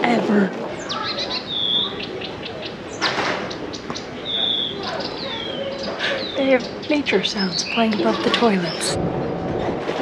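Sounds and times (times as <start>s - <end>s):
birdsong through loudspeaker: 0.8s - 8.0s
whistled bird notes: 4.2s - 6.4s
rush of noise: 8.8s - 10.0s.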